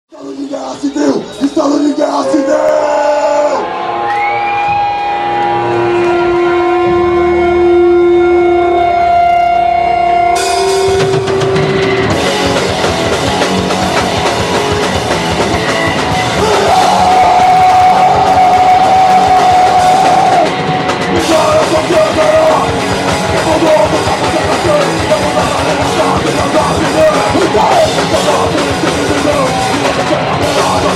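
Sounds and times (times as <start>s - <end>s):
drums: 0.1s - 30.9s
punk band playing loudly: 0.2s - 30.9s.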